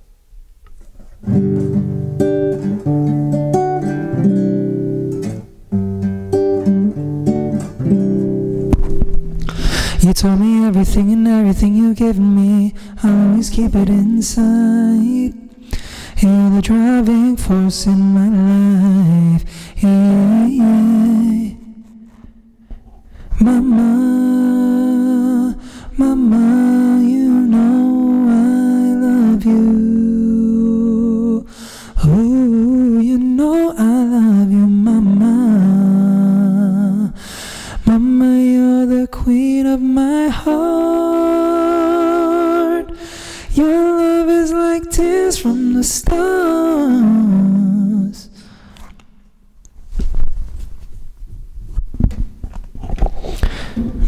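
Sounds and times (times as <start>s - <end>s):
man singing with harmony effect: 9.6s - 22.3s, 23.3s - 48.5s.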